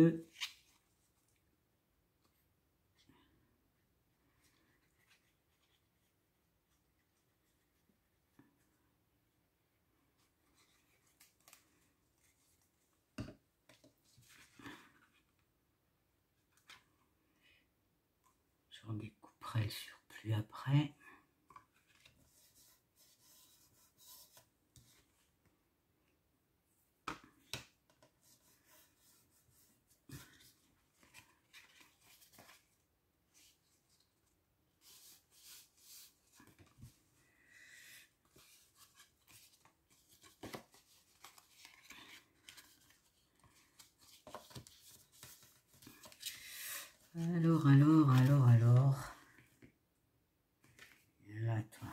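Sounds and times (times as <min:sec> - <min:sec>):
paper rustling: 0:38.2 - 0:48.9.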